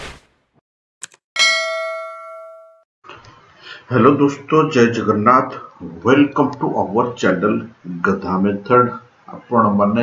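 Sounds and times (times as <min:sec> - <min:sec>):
bell-like ding: 0:01.4 - 0:02.8.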